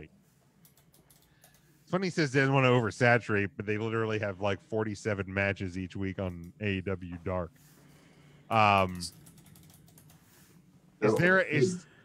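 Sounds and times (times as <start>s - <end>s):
low steady hum: 0.0s - 12.0s
typing on computer keyboard: 0.6s - 1.7s, 8.5s - 10.3s.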